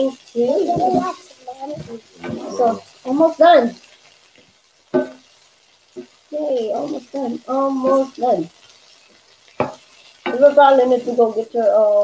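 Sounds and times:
vegetables sizzling in skillet: 0.0 - 12.0.

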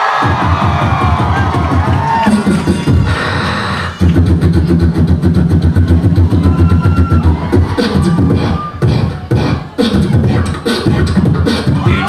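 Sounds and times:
beatboxing through a microphone: 0.2 - 12.0.

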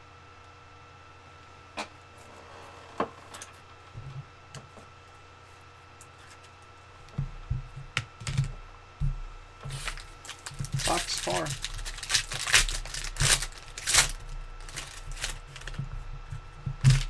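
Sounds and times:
faint electrical hum: 0.0 - 17.0.

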